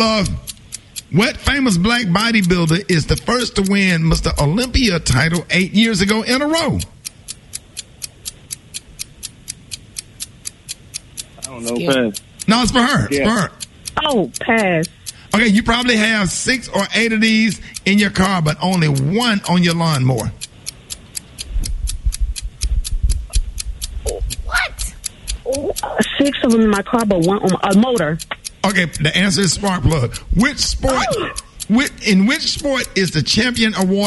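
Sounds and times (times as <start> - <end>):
countdown clock ticking: 0.0 - 34.0
low bass rumble: 21.4 - 26.0, 28.9 - 31.8.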